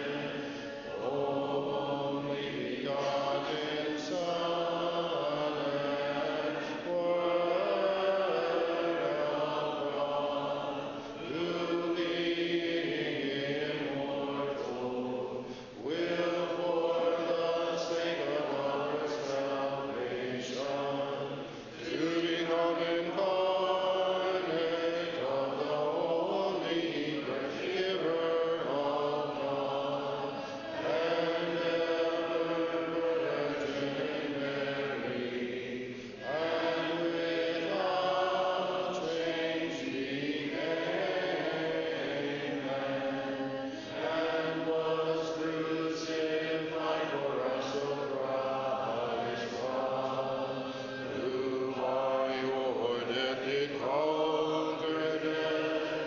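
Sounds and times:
voices singing unaccompanied chant: 0.0 - 56.0.

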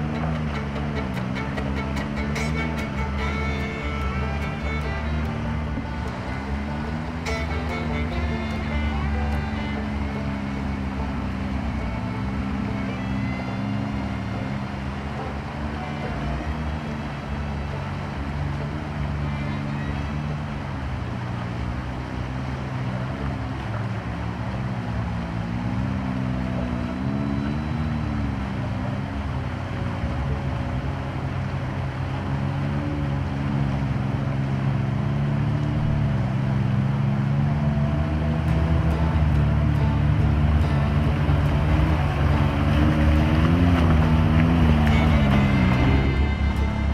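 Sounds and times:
flowing water rushing: 0.0 - 27.0, 27.9 - 46.9
vehicle engine running: 0.0 - 46.9.

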